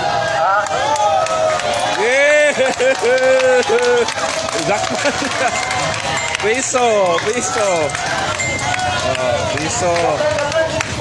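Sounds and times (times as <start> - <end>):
men shouting and yelling: 0.0 - 11.0.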